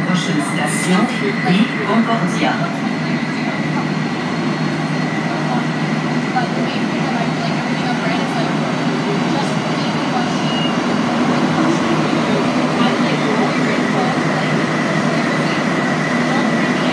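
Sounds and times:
thin high whine: 0.0s - 16.9s
train interior rumble: 0.0s - 16.9s.

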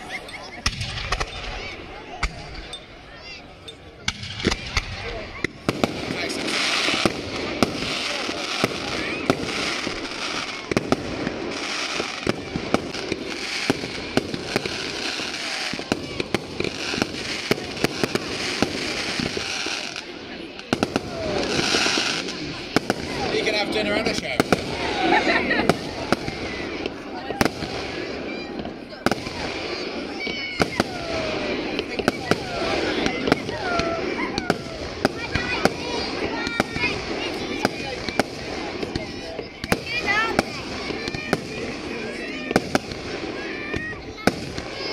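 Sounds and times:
firework bangs: 0.0s - 3.4s, 4.0s - 44.9s.

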